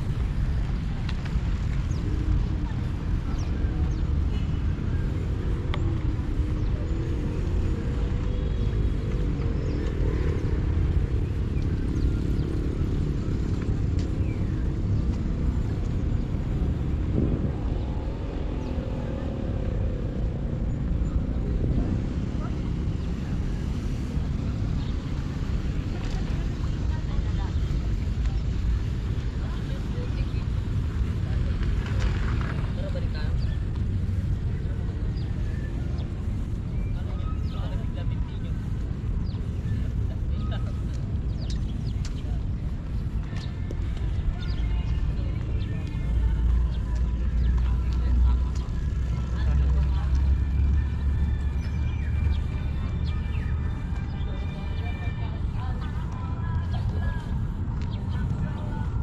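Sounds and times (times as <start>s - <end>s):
faint distant voices: 0.0s - 59.0s
low outdoor rumble: 0.0s - 59.0s.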